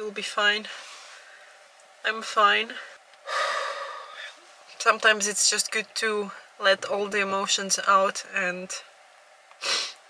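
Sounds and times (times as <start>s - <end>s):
woman breathing deeply: 2.8s - 4.4s.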